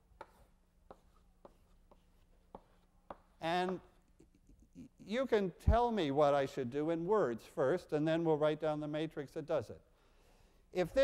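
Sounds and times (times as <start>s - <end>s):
chalk tapping on blackboard: 0.0s - 4.0s.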